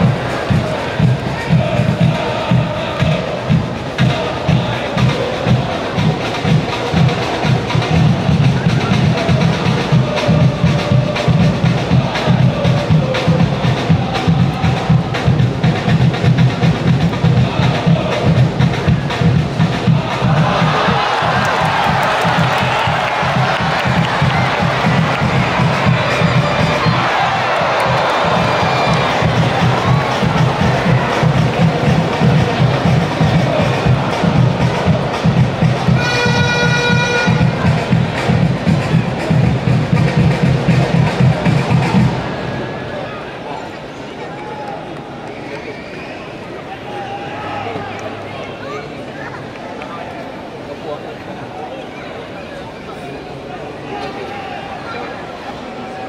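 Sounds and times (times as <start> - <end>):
crowd cheering loudly: 0.0 - 15.1, 17.2 - 39.4, 40.0 - 51.1
drums beating fast rhythm: 0.0 - 42.5
crowd chanting: 0.0 - 43.6
held horn-like tone: 36.0 - 37.6.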